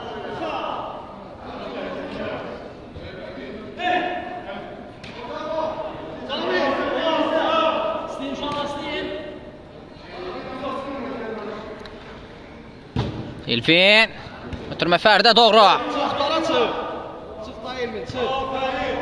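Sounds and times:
men talking and calling out: 13.4 - 19.0.

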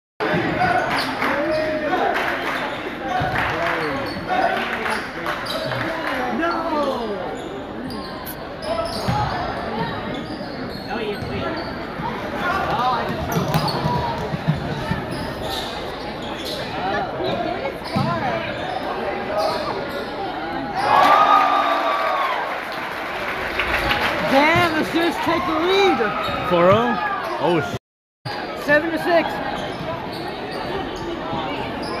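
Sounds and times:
crowd chatter and calls: 0.2 - 32.0.

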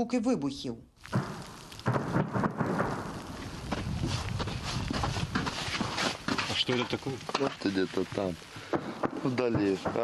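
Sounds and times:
distant explosions: 1.1 - 4.0.

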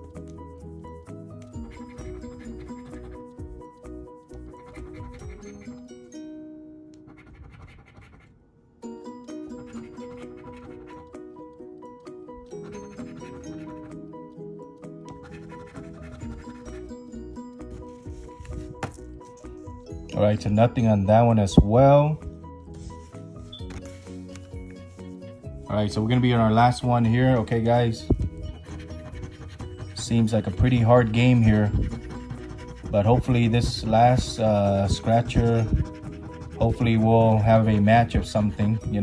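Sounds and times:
coin scratching lottery ticket: 1.6 - 3.4, 4.4 - 5.8, 7.1 - 8.3, 9.4 - 11.2, 15.2 - 18.4, 26.4 - 38.9.

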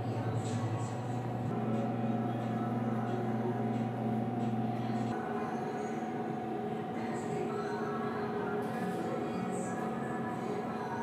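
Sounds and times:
machine hum: 0.0 - 11.0.

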